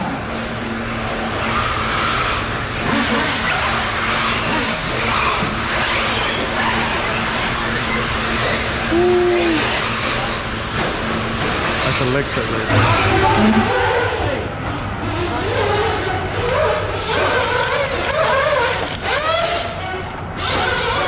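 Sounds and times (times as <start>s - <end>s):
steady hum: 0.0s - 17.7s
short falling tone: 13.4s - 13.7s.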